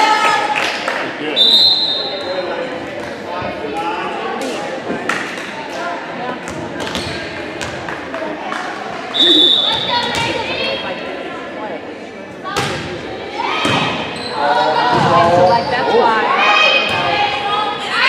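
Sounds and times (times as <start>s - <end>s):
voices echoing in hall: 0.0s - 18.0s
whistle blast: 1.4s - 2.2s, 9.1s - 9.8s
ball bouncing on gym floor: 6.4s - 8.0s, 12.5s - 12.9s.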